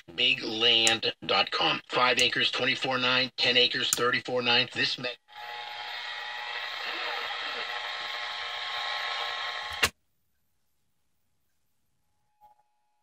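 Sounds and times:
radio static hiss: 0:04.5 - 0:09.9.

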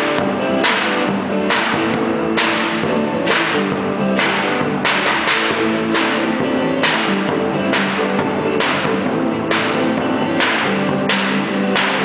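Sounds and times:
guitar: 0:00.0 - 0:12.0
swishing percussion: 0:00.0 - 0:12.0
violin: 0:00.0 - 0:12.0.

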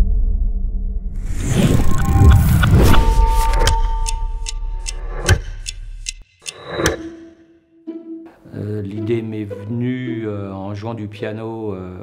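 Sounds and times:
mechanical watch ticking: 0:03.6 - 0:07.2.

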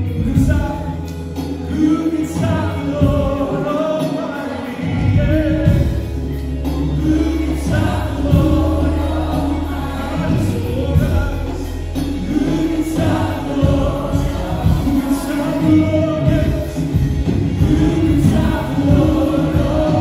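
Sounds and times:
backing singers: 0:00.0 - 0:20.0
band playing worship music: 0:00.0 - 0:20.0
man singing lead: 0:00.0 - 0:20.0.

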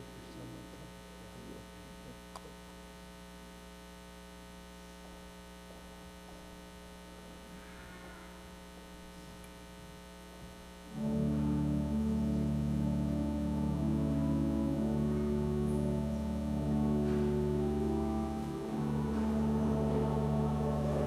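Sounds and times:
electrical mains hum: 0:00.0 - 0:21.0.

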